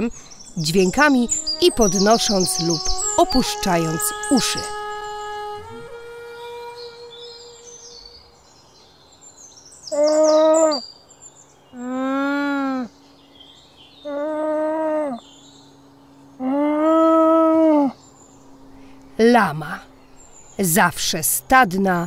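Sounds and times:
birdsong chirps: 0.0 - 5.9, 6.7 - 12.0, 12.8 - 14.4, 15.0 - 16.5, 17.8 - 22.0
llama humming: 0.0 - 8.2, 11.8 - 12.9, 14.0 - 15.3, 16.3 - 22.0
held musical note: 0.6 - 8.2.

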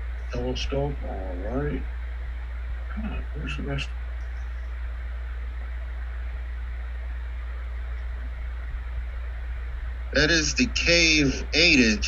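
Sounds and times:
faint even hiss: 0.0 - 12.0
steady low hum: 0.0 - 12.0.

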